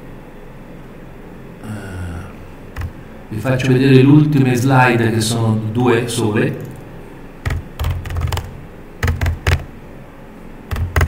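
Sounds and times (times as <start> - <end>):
laptop keyboard typing: 2.7 - 3.0, 7.4 - 9.7, 10.7 - 11.0.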